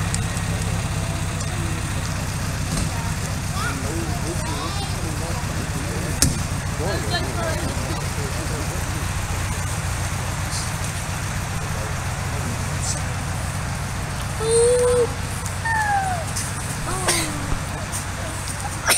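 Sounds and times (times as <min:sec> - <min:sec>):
car engine running at low revs: 0:00.0 - 0:18.9
short calls: 0:03.4 - 0:18.9.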